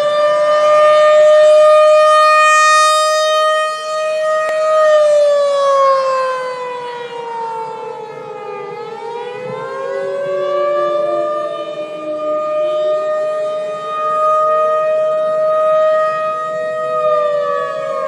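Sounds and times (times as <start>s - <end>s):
warning siren wailing: 0.0s - 18.0s.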